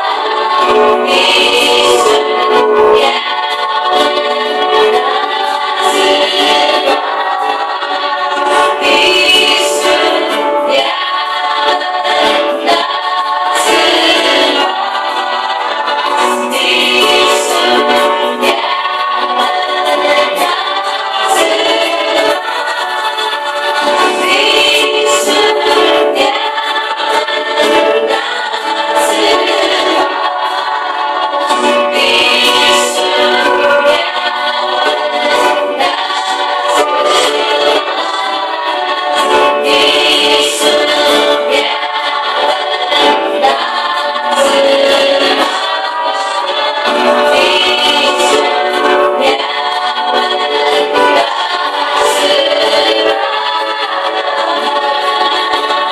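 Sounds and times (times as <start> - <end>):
group singing worship song: 0.0 - 55.9.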